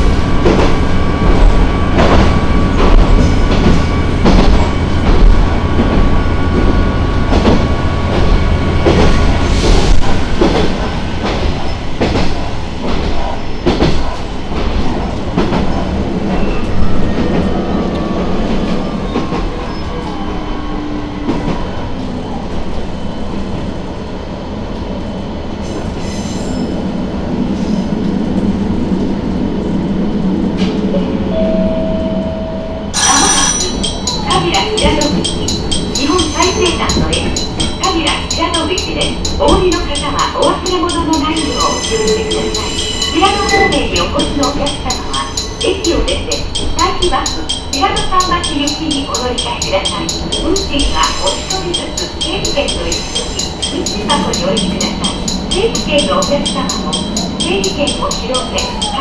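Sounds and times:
diesel railcar engine humming: 0.0 - 59.0
rail-joint clicks: 0.3 - 19.6, 33.0 - 59.0
bright chime: 33.0 - 40.0.

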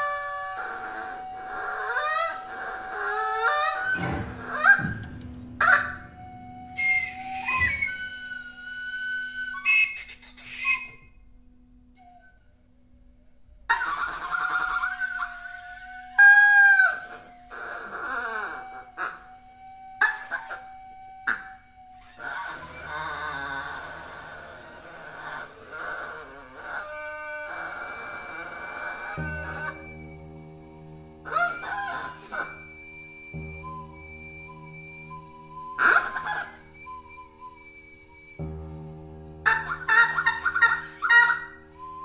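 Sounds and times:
duck call squawks and honks: 0.0 - 5.0, 5.6 - 6.0, 9.6 - 11.0, 13.7 - 19.2, 20.0 - 20.7, 31.2 - 32.7, 35.7 - 36.9, 39.4 - 42.0
low drone: 0.0 - 9.7, 11.1 - 42.0
steady high tone: 3.8 - 8.8.

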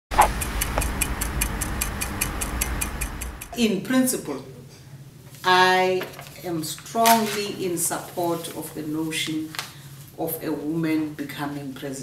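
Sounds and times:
clock ticking: 0.2 - 3.6
low steady hum: 0.2 - 4.7.

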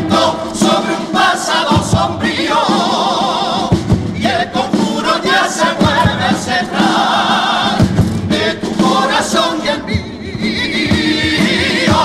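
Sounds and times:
bass drum strokes: 0.0 - 12.0
male choir singing in harmony: 0.0 - 12.0.

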